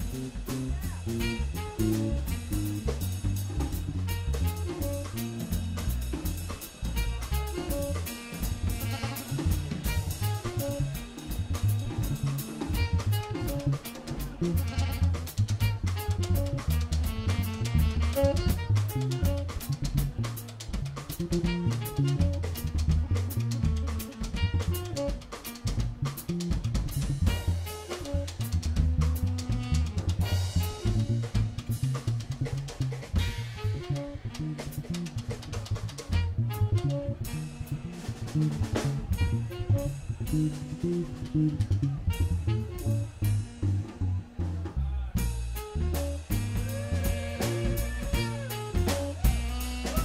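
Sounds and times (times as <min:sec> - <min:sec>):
busy drum kit: 0:00.0 - 0:50.0
funk-jazz band playing: 0:00.0 - 0:50.0.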